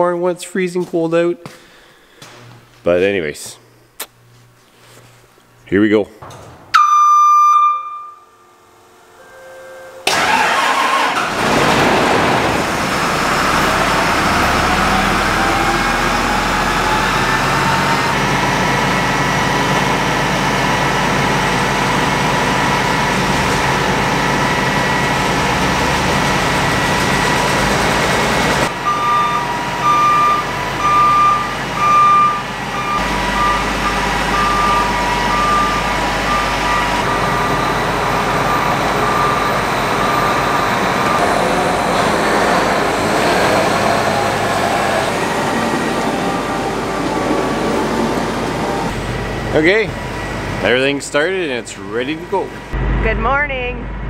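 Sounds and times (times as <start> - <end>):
warning beep: 6.7 - 8.3, 28.8 - 41.4
combine machinery whine: 7.6 - 54.0.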